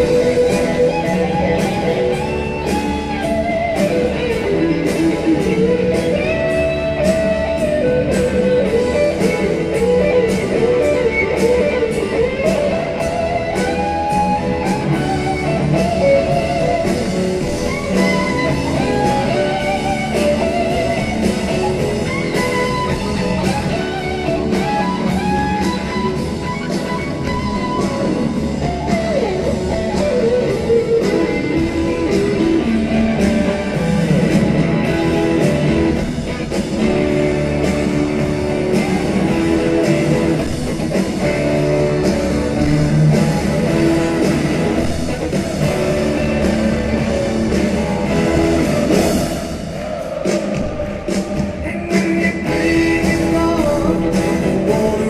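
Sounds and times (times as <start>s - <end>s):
electric guitar bending notes: 0.0s - 49.7s
live rock band playing: 0.0s - 55.0s.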